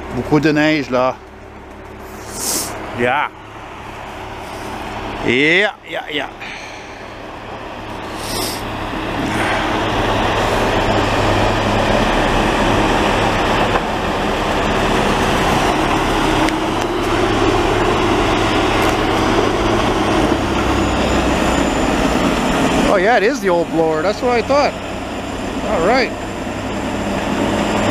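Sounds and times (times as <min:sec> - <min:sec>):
snowblower and truck diesel engines: 0:00.0 - 0:27.9.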